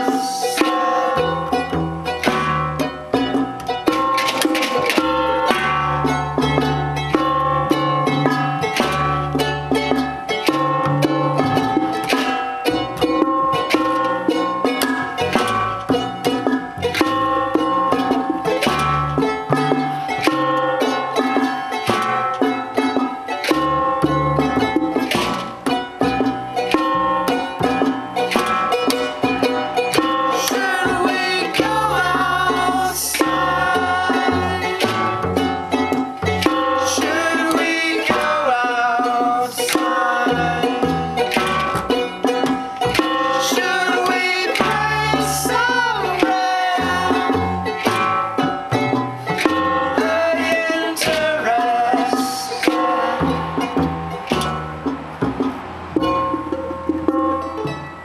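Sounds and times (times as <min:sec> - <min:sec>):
double bass notes: 0:00.0 - 0:58.0
junk percussion beat: 0:00.0 - 0:58.0
plucked charango: 0:00.0 - 0:58.0.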